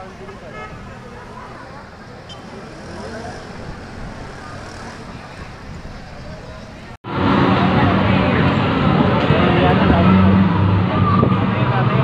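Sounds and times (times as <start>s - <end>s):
crowd chatter: 0.0s - 12.0s
street traffic: 0.0s - 12.0s.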